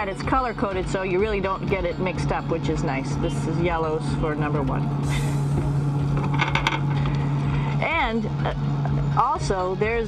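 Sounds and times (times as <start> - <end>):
ventilation fans humming: 0.0 - 10.0.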